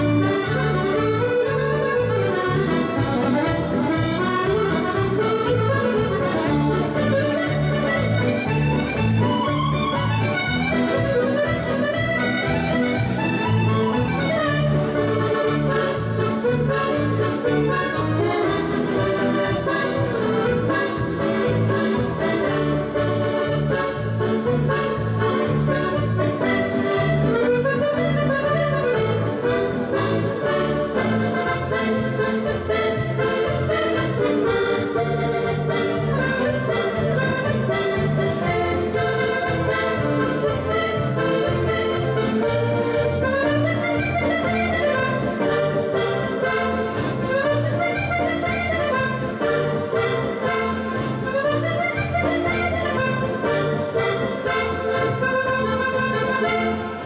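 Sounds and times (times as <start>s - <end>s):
button accordion melody: 0.0s - 57.0s
keyboard accompaniment with bass beat: 0.0s - 57.0s.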